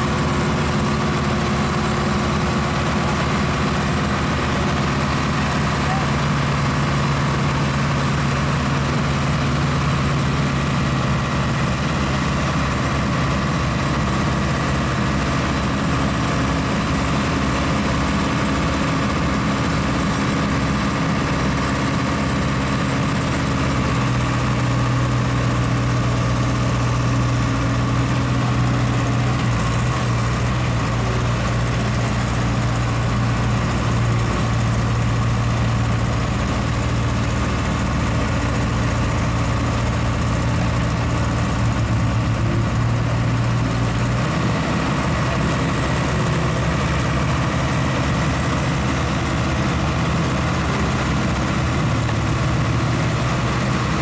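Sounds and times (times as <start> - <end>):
diesel engines droning: 0.0 - 54.0
machinery running: 0.0 - 54.0.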